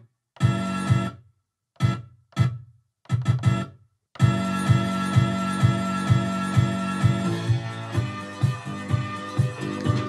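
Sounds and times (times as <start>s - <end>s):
sampled music loop with beat: 0.0s - 10.0s
chopped chord stabs: 3.2s - 10.0s.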